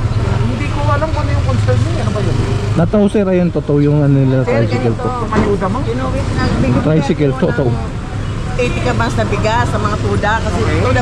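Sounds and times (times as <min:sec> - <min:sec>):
low rumble of vehicle engines: 0:00.0 - 0:11.0
people talking: 0:00.4 - 0:08.0, 0:08.6 - 0:11.0.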